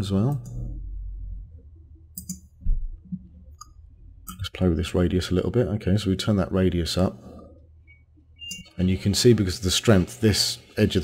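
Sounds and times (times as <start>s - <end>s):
computer mouse clicks: 2.1s - 2.5s.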